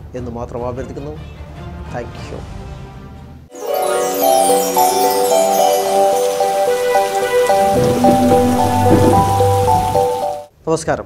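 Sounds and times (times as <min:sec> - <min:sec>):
melody of short notes: 0:03.5 - 0:10.5
steady rain falling: 0:03.6 - 0:10.5.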